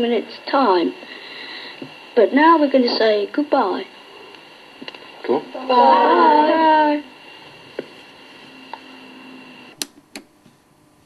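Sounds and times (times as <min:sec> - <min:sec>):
faint steady hum: 0:00.0 - 0:11.0
low hiss: 0:00.0 - 0:11.0.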